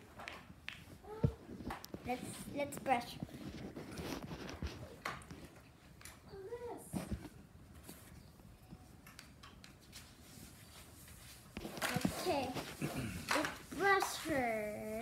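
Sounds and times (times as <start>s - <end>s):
brush rustling through fur: 9.9s - 12.9s, 13.7s - 15.0s.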